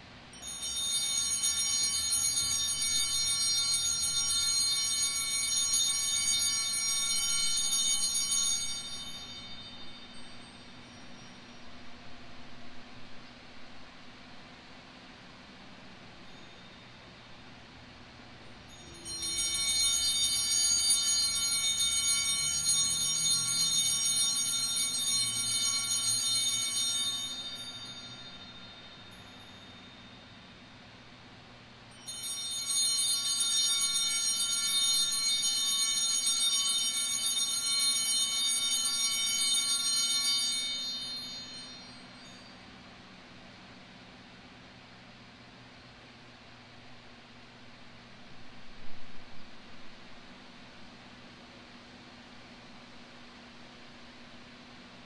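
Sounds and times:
altar bells ringing: 0:00.3 - 0:11.7, 0:16.2 - 0:17.2, 0:18.4 - 0:31.2, 0:31.9 - 0:43.1.

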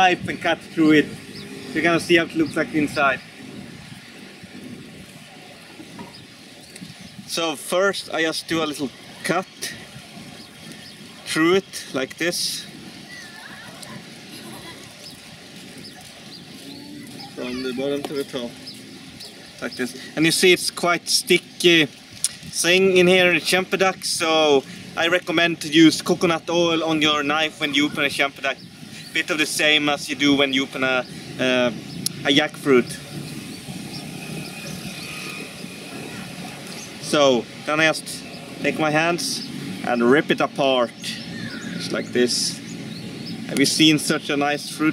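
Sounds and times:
distant traffic: 0:00.0 - 0:44.9
distant voices: 0:00.0 - 0:44.9.

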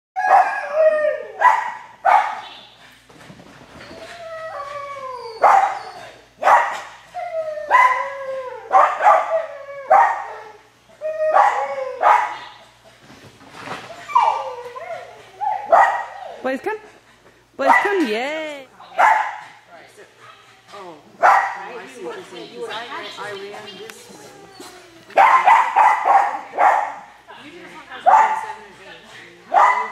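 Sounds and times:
small dog barking: 0:01.4 - 0:02.5, 0:08.7 - 0:09.3, 0:11.4 - 0:12.5, 0:15.7 - 0:16.2, 0:18.9 - 0:19.4, 0:21.2 - 0:21.7, 0:25.2 - 0:27.1, 0:29.5 - 0:29.9.

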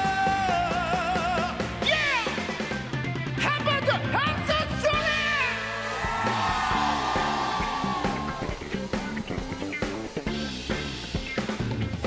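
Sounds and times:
steady bass line: 0:00.0 - 0:12.0.

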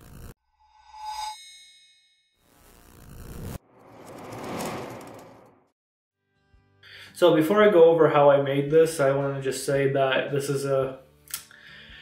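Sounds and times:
rising whoosh: 0:03.3 - 0:05.7
fuller whoosh: 0:03.4 - 0:05.7.

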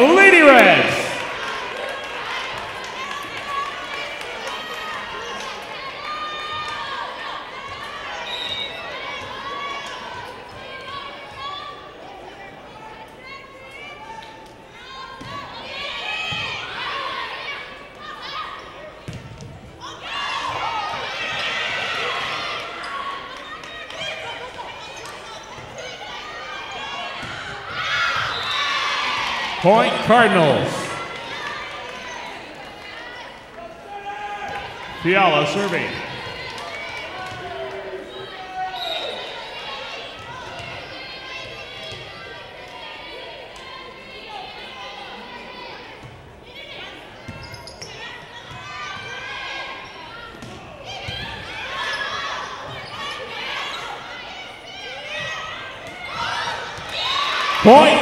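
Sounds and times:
people calling out and cheering: 0:00.0 - 0:01.4, 0:29.4 - 0:31.3, 0:35.0 - 0:36.3, 0:57.4 - 0:58.0.

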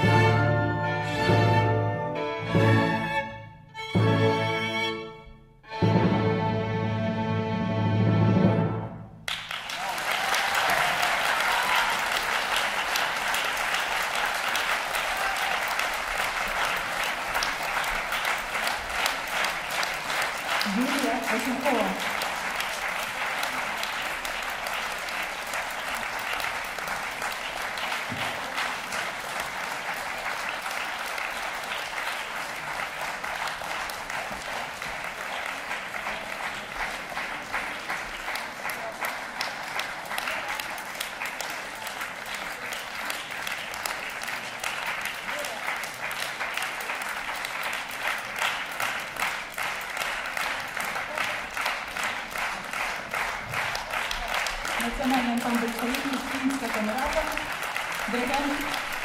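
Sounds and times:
audience applauding: 0:09.2 - 0:59.0.

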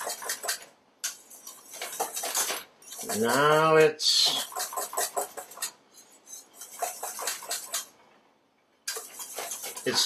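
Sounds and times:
whisk clicking against metal bowl: 0:00.0 - 0:05.8, 0:06.4 - 0:07.9, 0:08.9 - 0:10.0.

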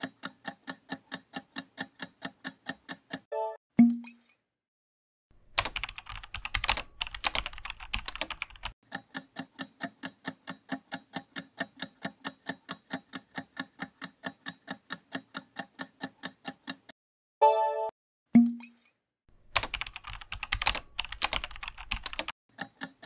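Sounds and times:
clock-like ticking: 0:00.0 - 0:03.3, 0:08.6 - 0:17.0
keyboard typing clicks: 0:05.6 - 0:16.9, 0:19.5 - 0:23.0.

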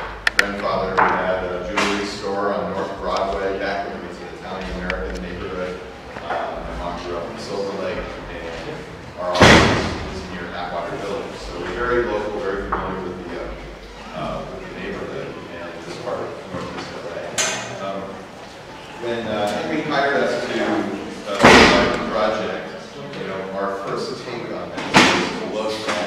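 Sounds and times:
man talking: 0:00.0 - 0:18.3, 0:18.9 - 0:26.0
loud slam echoing: 0:09.2 - 0:10.8, 0:21.3 - 0:22.4.

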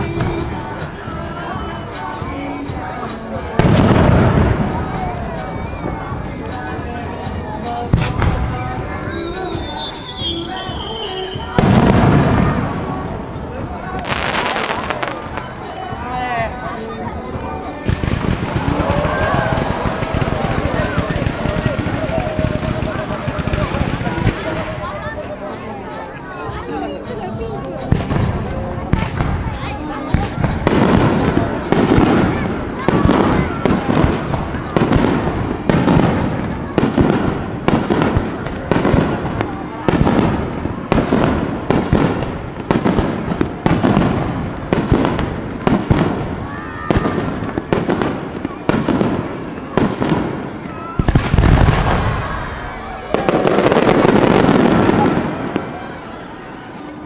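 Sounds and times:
heavy firework boom: 0:03.5 - 0:06.2, 0:11.4 - 0:13.3, 0:30.1 - 0:55.8.

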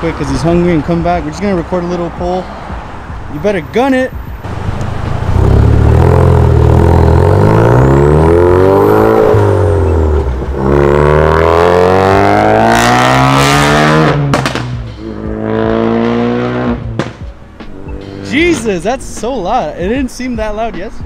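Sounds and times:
car engine accelerating hard: 0:04.4 - 0:17.2.

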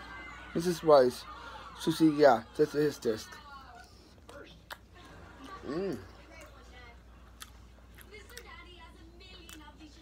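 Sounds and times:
chewing food: 0:03.6 - 0:10.0.

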